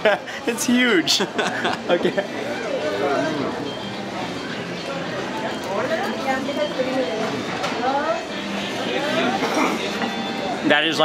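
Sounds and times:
indistinct voices talking: 0:00.5 - 0:11.0.

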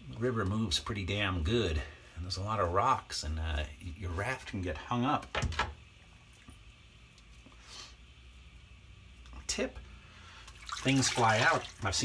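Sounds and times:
steady low hum: 0:00.0 - 0:10.8
shaving lather squishing: 0:10.6 - 0:12.0.

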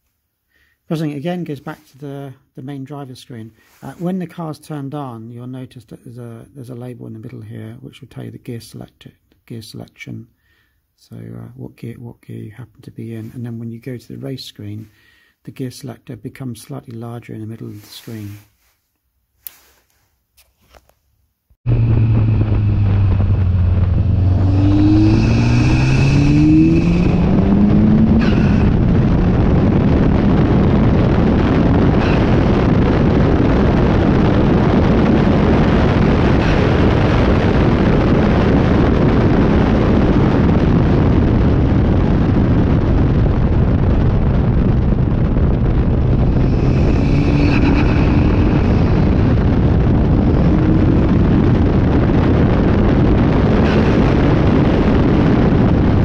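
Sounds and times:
wind rush: 0:21.6 - 0:56.0
race car engine accelerating: 0:21.7 - 0:30.0, 0:45.6 - 0:51.4, 0:53.6 - 0:55.2.

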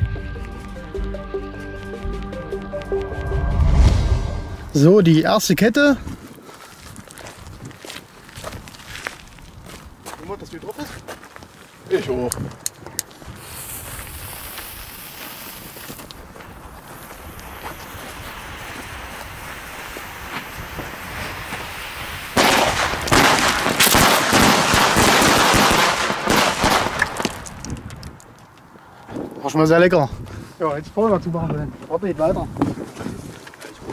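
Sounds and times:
fuse hissing: 0:13.4 - 0:16.1, 0:16.8 - 0:22.4.

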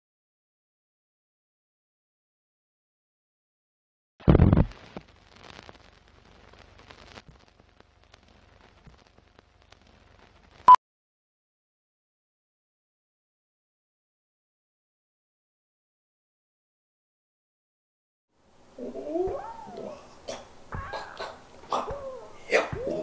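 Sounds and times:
faint film crackle: 0:04.2 - 0:10.8, 0:18.4 - 0:23.0
wordless sliding cries: 0:18.8 - 0:23.0.

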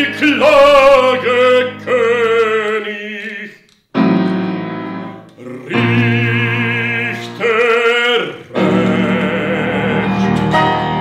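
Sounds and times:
baritone singing opera: 0:00.0 - 0:03.7, 0:05.3 - 0:10.8.

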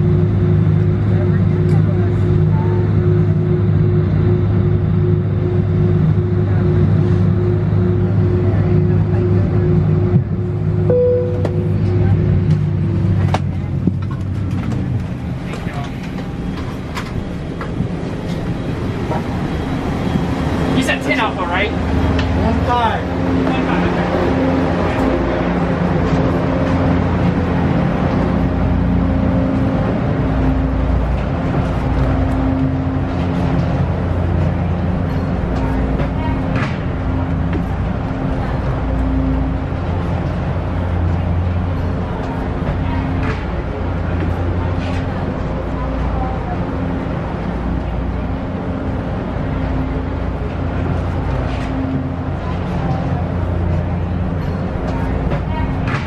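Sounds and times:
airliner cabin hum: 0:00.0 - 0:56.0
steady drone: 0:00.0 - 0:56.0.

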